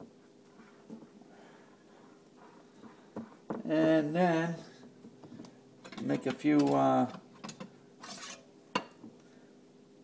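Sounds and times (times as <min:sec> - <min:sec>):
knife scraping: 0:08.0 - 0:08.5.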